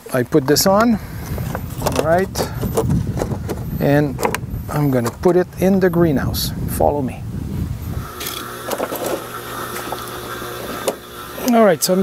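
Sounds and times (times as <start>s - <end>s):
pump humming: 7.7s - 12.0s.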